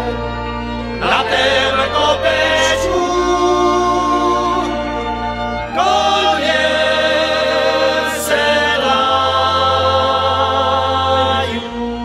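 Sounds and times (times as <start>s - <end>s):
folk band with violins and cimbalom: 0.0s - 12.0s
voices singing along: 0.0s - 12.0s.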